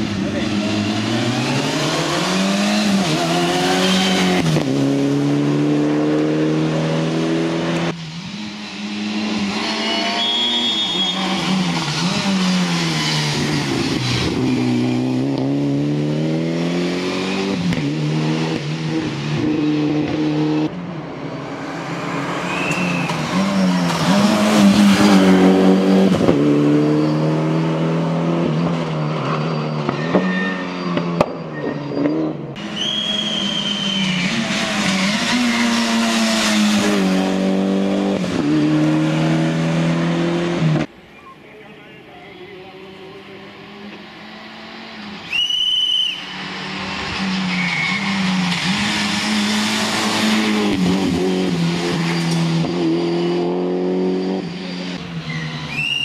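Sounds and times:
car engine at full throttle: 0:00.0 - 0:30.2, 0:31.0 - 0:41.0, 0:46.1 - 0:56.0.

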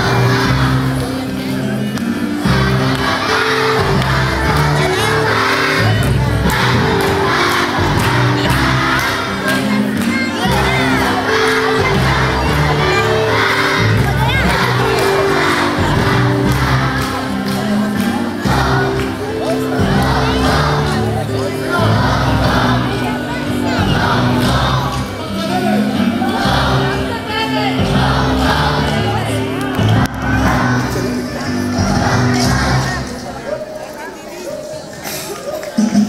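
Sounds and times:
children singing together: 0:00.0 - 0:01.8, 0:02.4 - 0:33.0
instrumental accompaniment: 0:00.0 - 0:33.7.

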